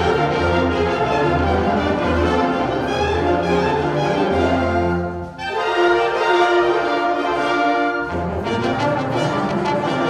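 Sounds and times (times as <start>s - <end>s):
wind band playing chords: 0.0s - 10.0s.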